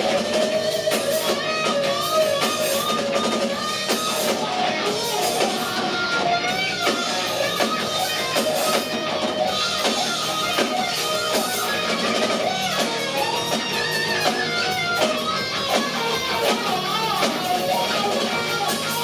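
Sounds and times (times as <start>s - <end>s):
bass guitar: 0.0s - 19.0s
distorted electric guitar lead: 0.0s - 19.0s
drums: 0.0s - 19.0s.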